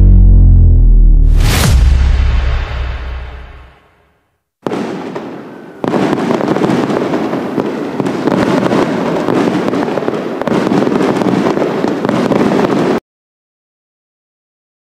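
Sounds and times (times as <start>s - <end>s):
fireworks crackling and popping: 4.6s - 13.0s.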